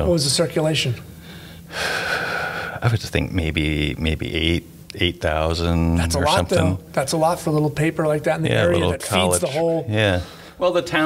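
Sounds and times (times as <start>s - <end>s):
man breathing in: 1.2s - 2.8s.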